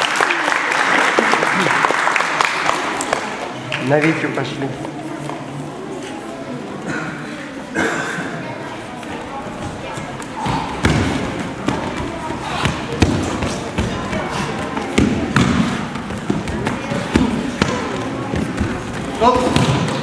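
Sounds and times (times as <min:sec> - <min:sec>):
voices in a large hall: 0:00.0 - 0:20.0.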